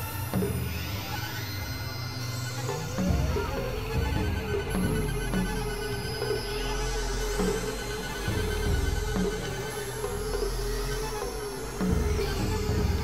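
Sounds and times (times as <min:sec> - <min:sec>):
experimental electronic music: 0:00.0 - 0:13.0.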